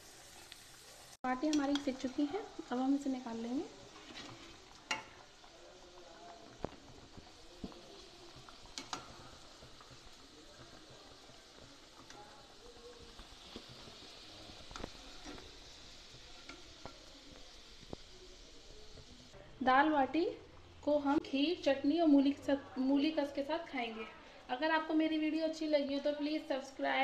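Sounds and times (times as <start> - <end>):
dough frying in oil: 0.0 - 23.8.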